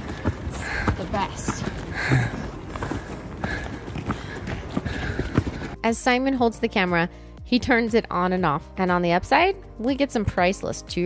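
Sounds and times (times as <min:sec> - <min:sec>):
footsteps on trail: 0:00.0 - 0:05.8.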